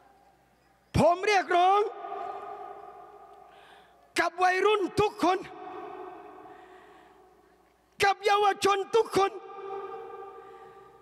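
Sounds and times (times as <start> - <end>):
loudspeaker ringing hum: 1.0 - 7.0, 8.1 - 11.0.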